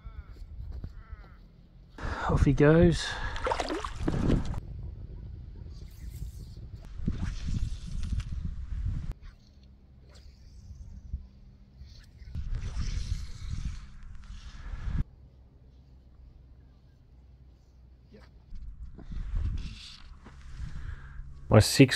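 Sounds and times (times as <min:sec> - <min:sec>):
wind gusting on microphone: 0:02.0 - 0:09.2, 0:12.3 - 0:15.0, 0:18.5 - 0:21.5.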